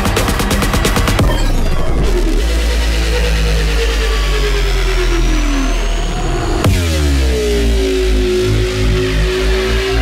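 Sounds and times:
deep sub-bass note: 1.1s - 10.0s
synth tone gliding downward: 1.4s - 10.0s.

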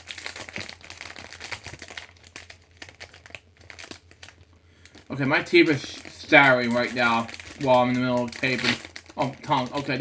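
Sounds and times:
candy wrapper crinkling: 0.0s - 10.0s.

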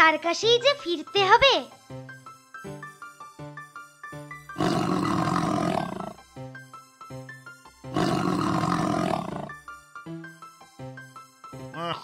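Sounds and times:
lion roaring: 4.6s - 6.2s, 7.9s - 9.6s.

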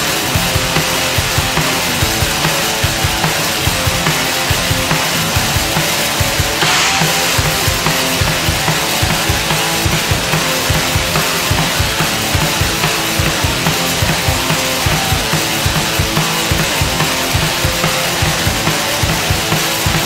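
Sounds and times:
distorted guitar: 0.0s - 20.0s
fast drum beat: 0.0s - 20.0s
cymbal crash: 6.2s - 18.6s.

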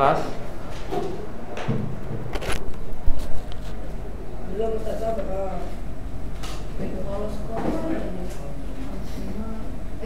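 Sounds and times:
shuffling and handling at desks: 0.3s - 3.9s.

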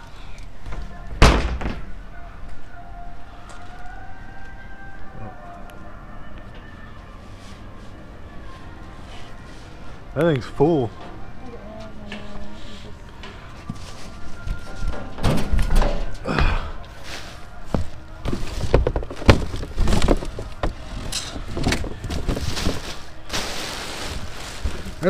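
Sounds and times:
knocks and thumps in a dumpster: 1.2s - 1.9s, 17.8s - 20.8s
plastic and cardboard rustling: 17.0s - 25.0s.

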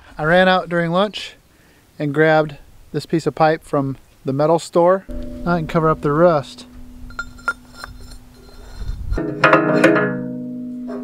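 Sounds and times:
steel pipe clinking on metal: 5.1s - 11.0s.

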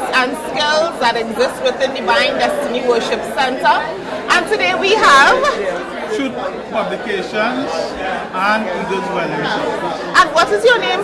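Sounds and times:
woman talking: 0.0s - 5.6s, 10.2s - 11.0s
chatter of voices in a hall: 0.0s - 11.0s.

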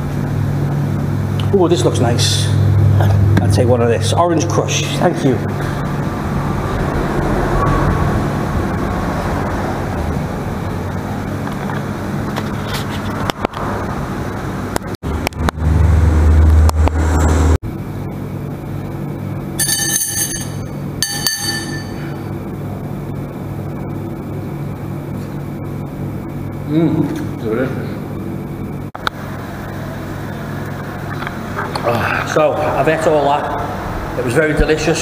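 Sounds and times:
room hum: 0.0s - 35.0s
passing road traffic: 5.6s - 11.2s.

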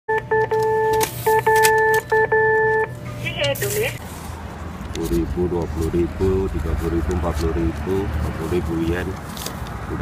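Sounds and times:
keypad electronic beeps: 0.1s - 3.6s
person speaking: 3.2s - 4.0s.

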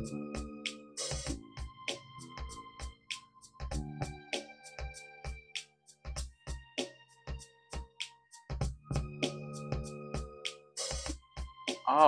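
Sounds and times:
drum beat with kick and cymbal: 0.0s - 12.0s.

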